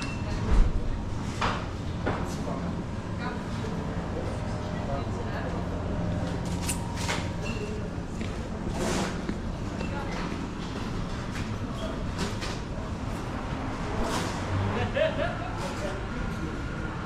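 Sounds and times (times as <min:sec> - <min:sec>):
faint indistinct voices: 0:00.0 - 0:17.0.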